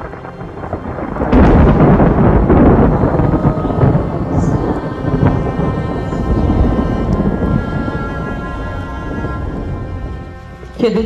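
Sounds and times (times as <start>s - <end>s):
rolling thunder rumble: 0.0s - 11.0s.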